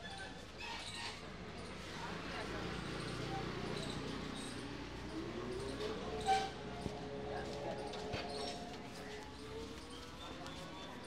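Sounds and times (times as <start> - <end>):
street ambience: 0.1 - 11.0.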